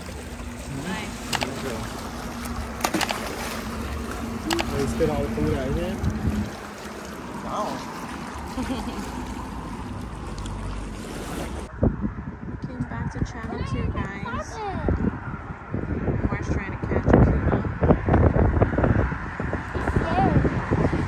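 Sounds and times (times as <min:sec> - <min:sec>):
small waves lapping on rocks: 0:00.0 - 0:11.7.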